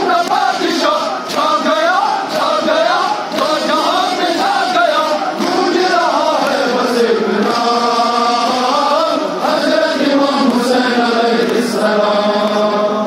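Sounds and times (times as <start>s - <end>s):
men chanting a lament: 0.0s - 13.0s.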